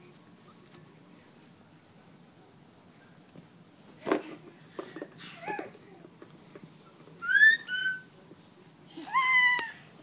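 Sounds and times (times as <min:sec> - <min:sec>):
baby squealing: 0:07.2 - 0:08.1.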